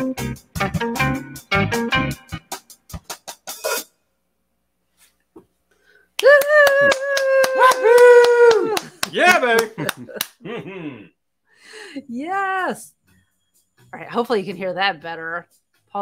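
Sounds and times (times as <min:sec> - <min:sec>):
group whooping: 0:06.2 - 0:10.0
hand claps: 0:06.2 - 0:10.4.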